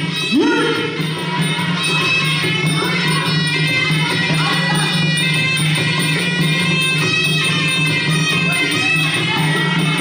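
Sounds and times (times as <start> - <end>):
pulsing drum beat: 0.0 - 10.0.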